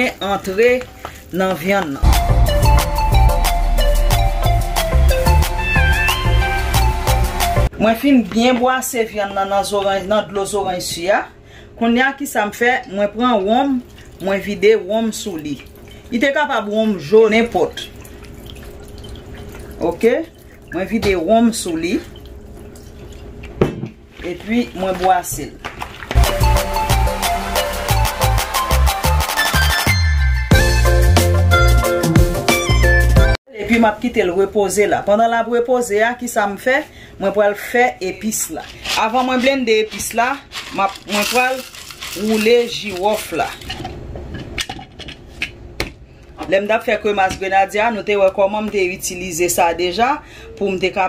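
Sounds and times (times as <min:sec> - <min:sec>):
liquid pouring and splashing: 0:13.7 - 0:14.5, 0:15.1 - 0:16.2, 0:16.9 - 0:26.7, 0:38.6 - 0:43.9.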